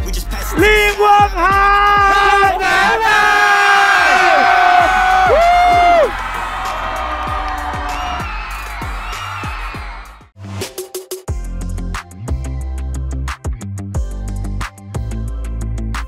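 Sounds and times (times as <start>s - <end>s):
concert crowd cheering: 0.5s - 10.3s.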